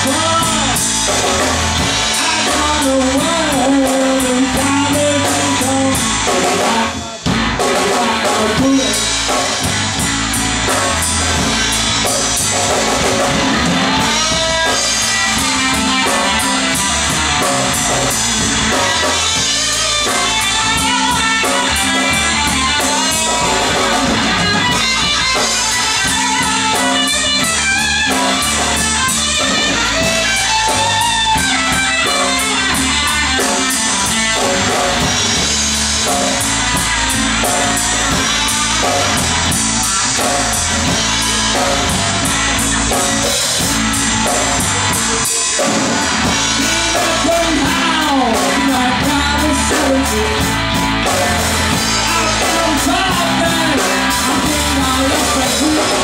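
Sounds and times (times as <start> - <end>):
drum kit: 0.0 - 56.0
electric bass guitar: 0.0 - 56.0
electric guitar: 0.0 - 56.0.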